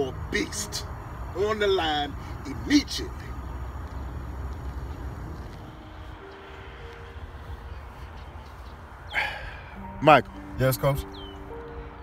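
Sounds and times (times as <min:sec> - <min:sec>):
low outdoor rumble: 0:00.0 - 0:09.6.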